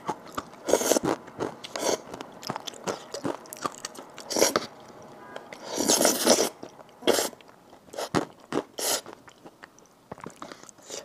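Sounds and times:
person chewing noodles: 0:00.0 - 0:11.0
person slurping noodles: 0:00.6 - 0:01.1, 0:05.6 - 0:08.2.

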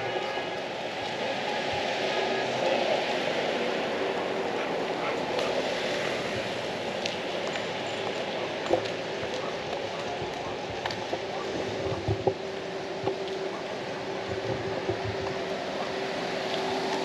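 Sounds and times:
outdoor background noise: 0:00.0 - 0:17.0.

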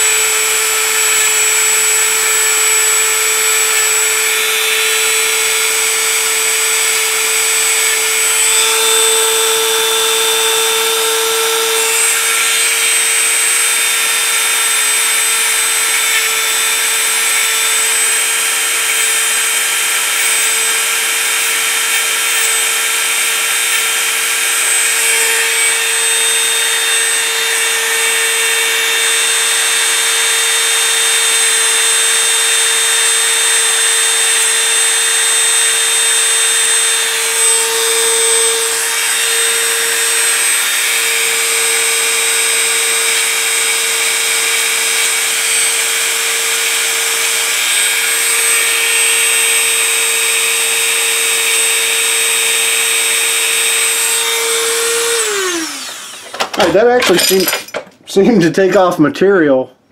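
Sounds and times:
rotary tool whining: 0:00.0 - 0:57.9.

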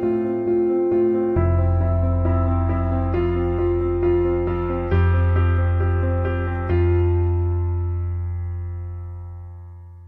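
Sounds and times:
deep bass note: 0:01.3 - 0:10.0.

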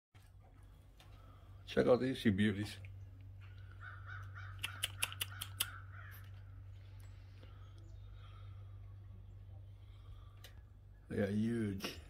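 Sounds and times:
low steady hum: 0:00.2 - 0:12.0
sharp clicks: 0:04.6 - 0:05.8.

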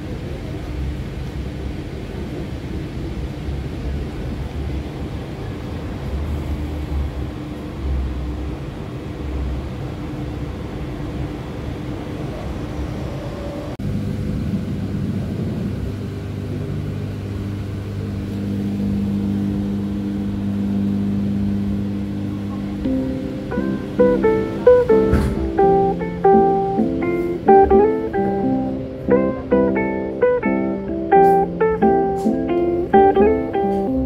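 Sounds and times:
low droning train running gear: 0:00.0 - 0:34.0
train carriage rumble: 0:00.0 - 0:34.0.

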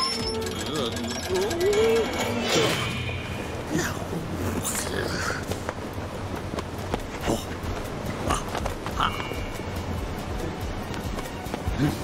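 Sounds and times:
cartoon background music: 0:00.0 - 0:03.0.

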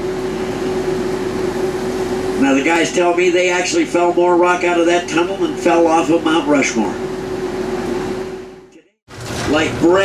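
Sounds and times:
bus engine and road rumble: 0:00.0 - 0:10.0
constant low hum: 0:00.0 - 0:10.0.

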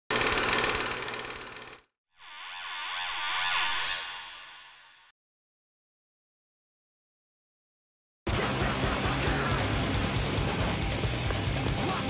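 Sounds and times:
whoosh with sweeping tones: 0:02.2 - 0:05.1.

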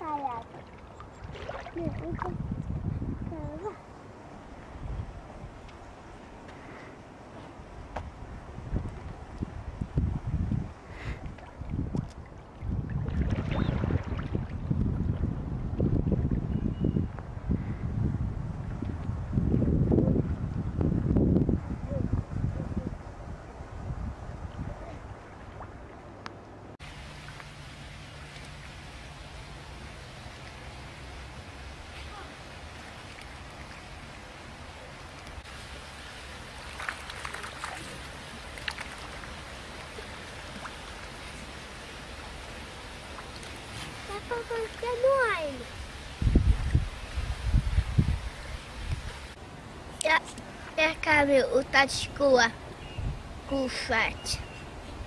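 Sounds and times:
wind buffeting microphone: 0:01.1 - 0:06.1, 0:07.6 - 0:26.2, 0:43.9 - 0:49.4, 0:50.0 - 0:55.0
faint high chirp: 0:16.5 - 0:17.2
water rushing hiss: 0:26.8 - 0:49.4.

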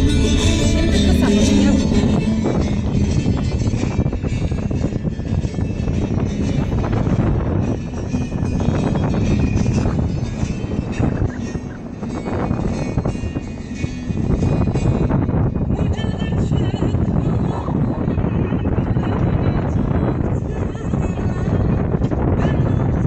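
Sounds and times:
car road noise rumble: 0:00.0 - 0:23.0
music playing: 0:00.0 - 0:23.0
wind buffeting microphone: 0:00.0 - 0:23.0.

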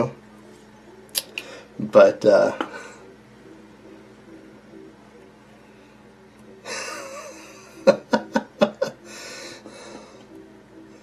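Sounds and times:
faint background music: 0:00.0 - 0:11.0
man laughing under his breath: 0:06.6 - 0:09.4.

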